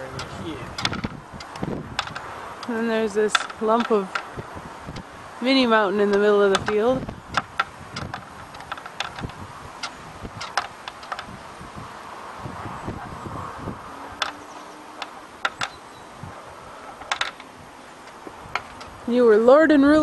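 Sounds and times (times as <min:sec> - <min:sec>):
light steady hiss: 0:00.0 - 0:20.0.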